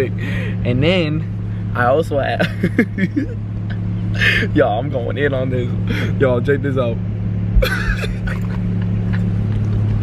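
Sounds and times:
low hum inside car: 0.0s - 10.0s.

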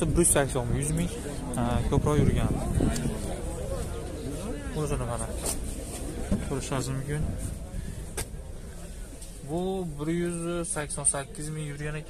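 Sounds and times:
man talking: 0.0s - 5.4s, 6.3s - 7.4s, 9.4s - 12.0s.

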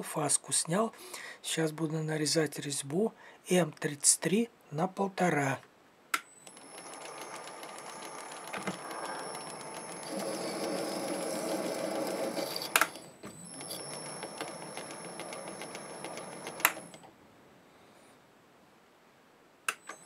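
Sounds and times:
lathe running with high whine: 6.5s - 17.0s
sharp machine click: 6.5s - 17.0s.

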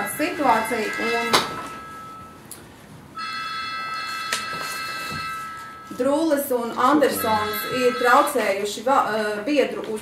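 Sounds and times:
high ringing tone: 0.0s - 2.5s, 3.2s - 8.8s.

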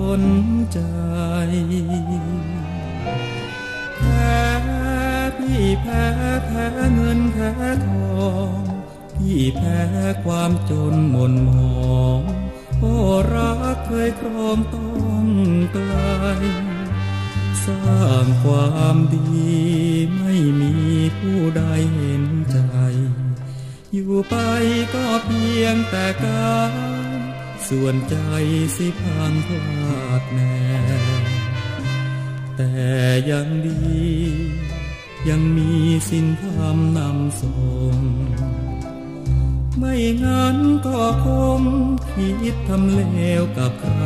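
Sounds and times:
bass line: 0.0s - 44.0s
instrumental accompaniment: 0.0s - 44.0s
man singing a slow ballad: 0.0s - 44.0s.

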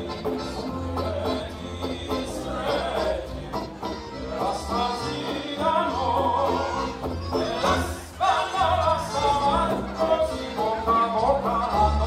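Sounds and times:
acoustic folk band playing: 0.0s - 12.0s
person singing: 0.0s - 12.0s.

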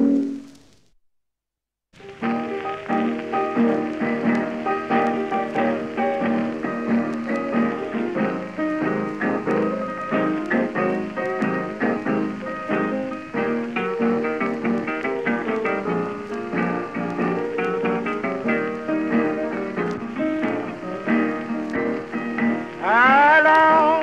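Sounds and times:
piano: 0.0s - 0.8s, 2.0s - 24.0s
record surface crackle: 0.0s - 1.0s, 2.0s - 24.0s
plucked acoustic guitar: 2.2s - 24.0s.

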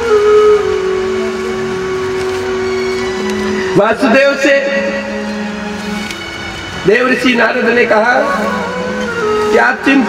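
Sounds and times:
instrument holding steady note: 0.0s - 10.0s.

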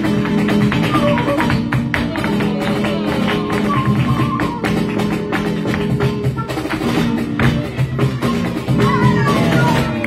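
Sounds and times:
flamenco guitar: 0.0s - 10.0s
rhythmic hand-clapping: 0.0s - 10.0s
sharp percussive beats: 0.0s - 10.0s.

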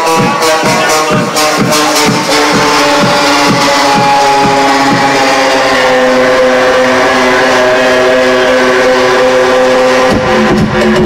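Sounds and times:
kick drum: 0.0s - 5.1s
held synth chords: 0.0s - 11.0s.

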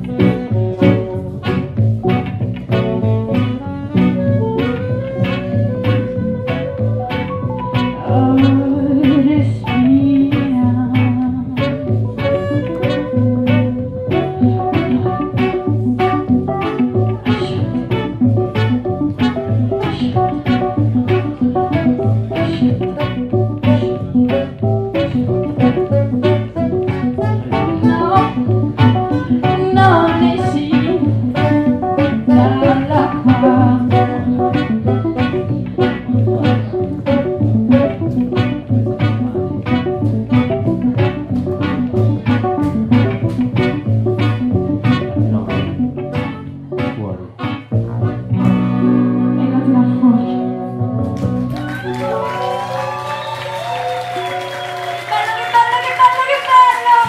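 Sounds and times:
drums keeping a steady beat: 0.0s - 46.9s
electric guitar: 0.0s - 57.0s
horns playing: 11.6s - 57.0s.

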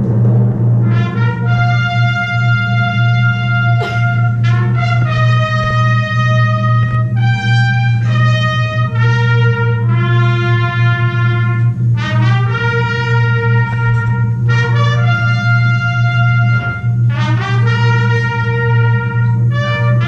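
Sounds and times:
brass sustained chords: 0.0s - 20.0s
steady low drone: 0.0s - 20.0s.

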